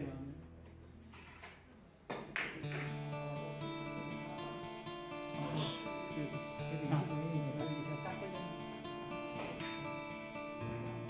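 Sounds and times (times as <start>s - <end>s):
guitar music: 0.0s - 1.4s, 2.6s - 11.0s.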